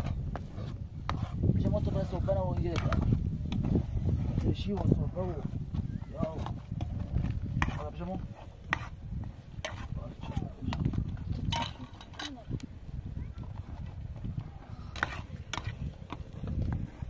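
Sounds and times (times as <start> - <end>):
faint voices: 9.8 - 15.3.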